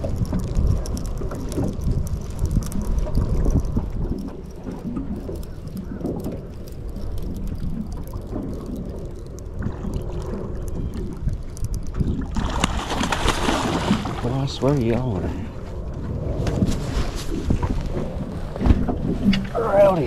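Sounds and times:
light ticks: 0.0s - 12.3s
water lapping at boat: 0.0s - 20.0s
wind rumbling on microphone: 0.0s - 20.0s.

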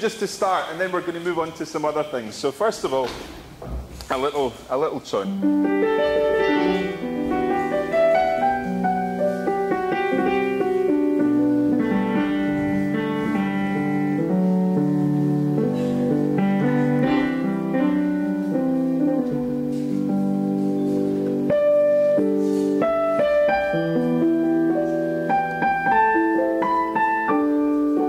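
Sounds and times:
gentle piano tune: 4.1s - 28.0s.

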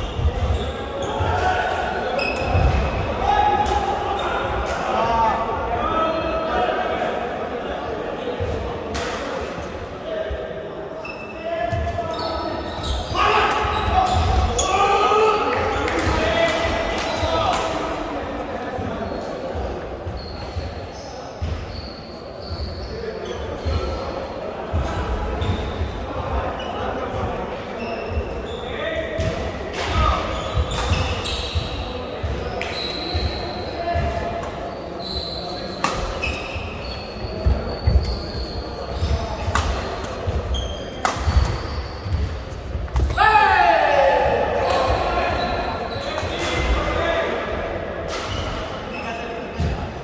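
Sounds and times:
shoes squeaking on floor: 0.0s - 3.0s, 11.0s - 14.9s, 20.0s - 26.8s, 27.8s - 29.2s, 30.0s - 43.4s, 44.6s - 47.2s
rackets striking shuttlecock: 35.8s - 36.4s, 39.4s - 40.4s, 41.0s - 42.3s
loud drawn-out shout: 43.1s - 45.3s.

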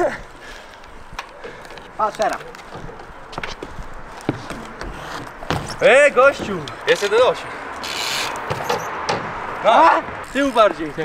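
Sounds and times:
bike tyres rolling on concrete: 0.0s - 11.0s
sharp knocks: 4.3s - 6.7s, 8.4s - 9.4s.

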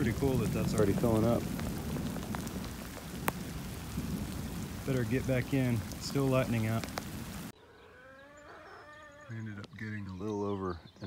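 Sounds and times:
rain falling on muddy ground: 0.0s - 7.5s.

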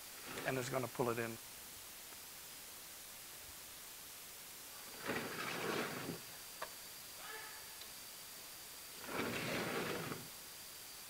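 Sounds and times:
platform scraping across dirt: 0.2s - 0.8s, 4.8s - 6.3s, 9.0s - 10.3s.

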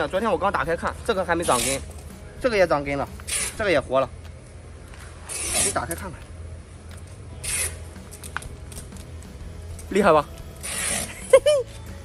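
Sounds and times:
plastic plant pot scraping rustle: 1.4s - 1.9s, 5.0s - 6.0s, 10.6s - 11.3s.

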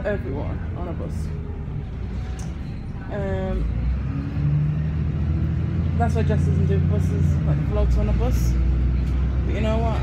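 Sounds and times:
bus engine drone: 0.0s - 10.0s.

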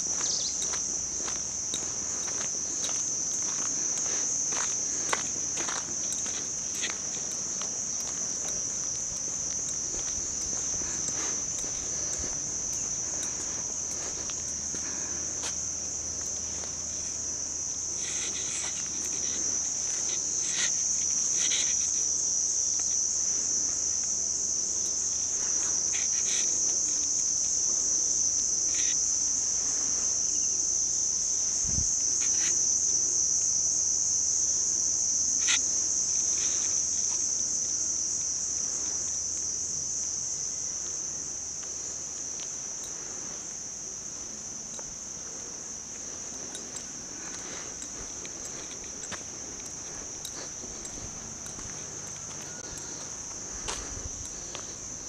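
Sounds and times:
insects buzzing: 0.0s - 55.0s.

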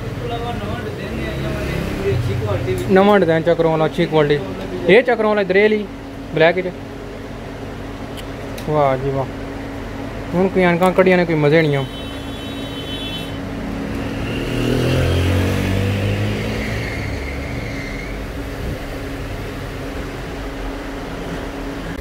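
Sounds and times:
vehicle engine passing by: 0.0s - 4.3s, 13.2s - 22.0s
street traffic noise: 0.0s - 22.0s
constant low hum: 2.2s - 14.2s, 17.7s - 22.0s.

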